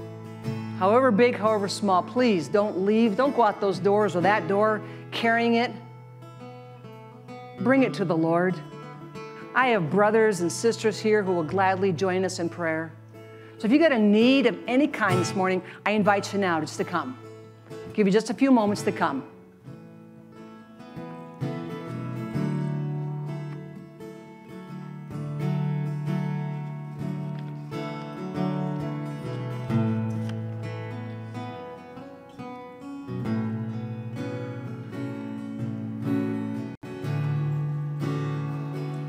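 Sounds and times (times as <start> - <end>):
electric guitar sustained chords: 20.8 - 39.0.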